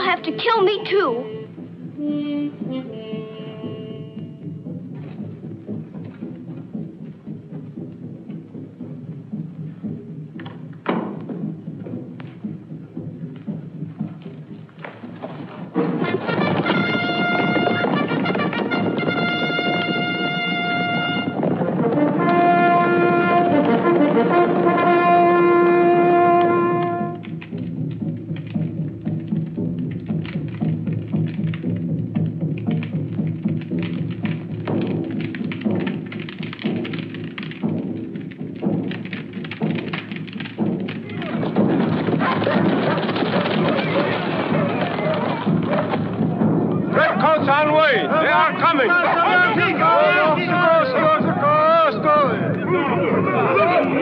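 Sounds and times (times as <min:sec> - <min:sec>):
orchestral film music: 0:00.0 - 0:54.0
long held brass notes: 0:16.0 - 0:27.3.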